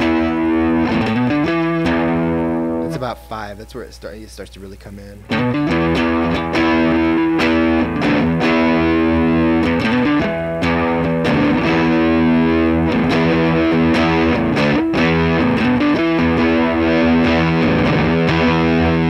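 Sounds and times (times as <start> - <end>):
distorted electric guitar chords: 0.0 - 4.1, 5.2 - 19.0.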